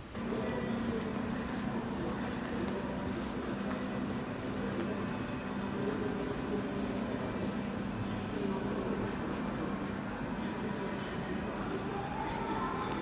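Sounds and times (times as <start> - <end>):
faint music: 0.0 - 13.0
steady low hum: 0.0 - 13.0.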